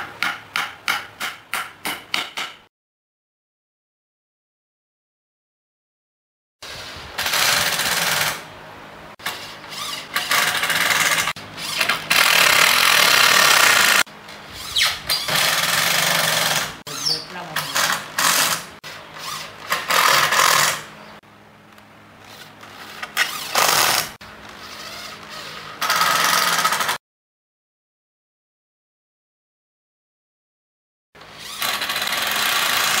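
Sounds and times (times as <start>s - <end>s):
electric drill driving screws: 7.2s - 8.4s, 9.2s - 16.8s, 17.6s - 20.9s, 23.2s - 27.0s, 31.3s - 33.0s.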